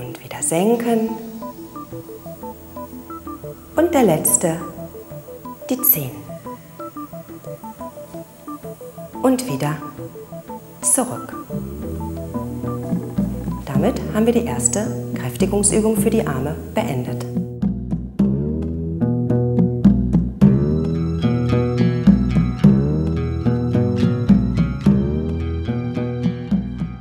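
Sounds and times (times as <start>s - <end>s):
electronic keyboard melody: 0.5s - 17.5s, 20.4s - 27.0s
plucked string notes: 0.9s - 26.9s.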